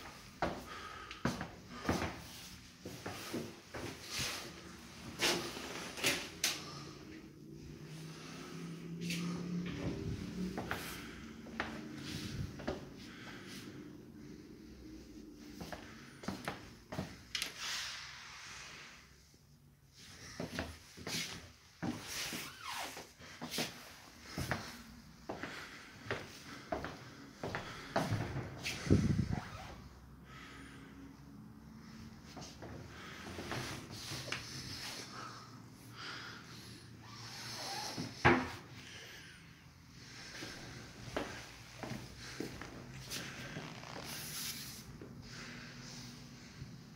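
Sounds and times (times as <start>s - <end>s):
footsteps: 40.3s - 45.2s.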